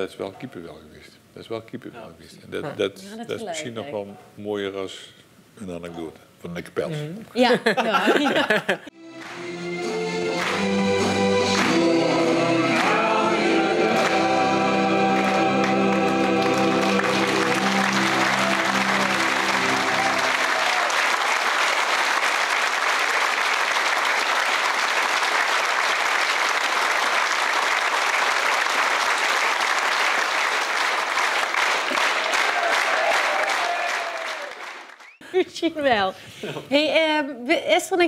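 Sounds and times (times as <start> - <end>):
held music notes: 9.0 - 20.9
audience applauding: 9.1 - 35.2.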